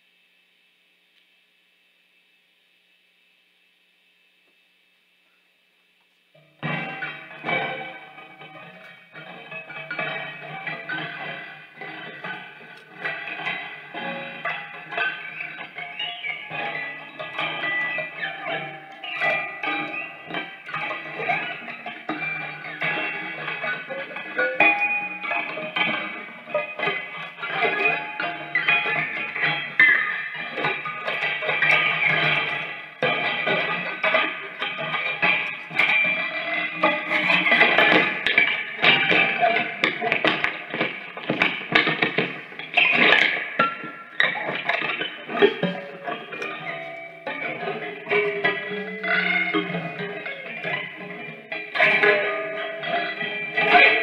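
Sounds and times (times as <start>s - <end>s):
prepared electric guitar improvisation: 6.4s - 54.0s.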